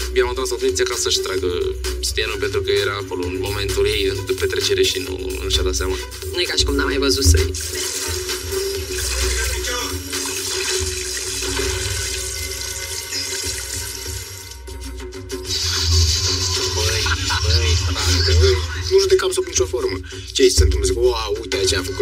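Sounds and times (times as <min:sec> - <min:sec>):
background music: 0:00.0 - 0:22.0.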